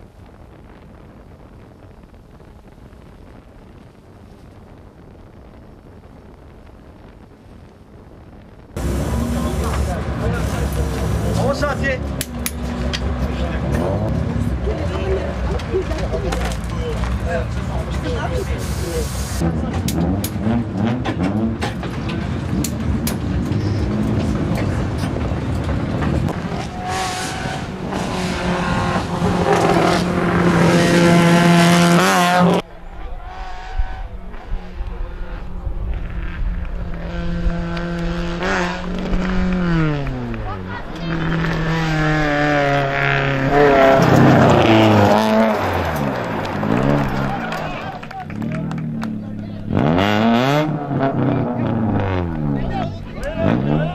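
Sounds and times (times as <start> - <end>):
gear changes: 6.0 - 53.9
rally car engine revving: 8.8 - 32.6, 33.2 - 53.9.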